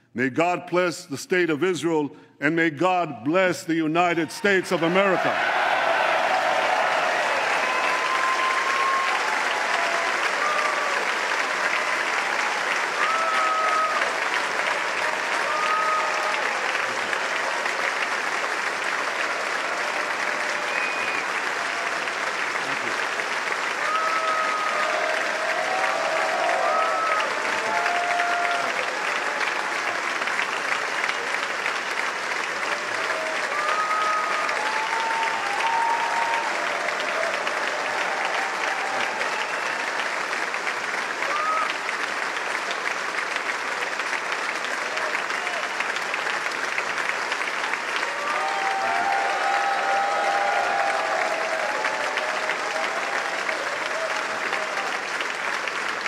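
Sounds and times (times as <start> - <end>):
audience applauding: 4.1 - 56.0.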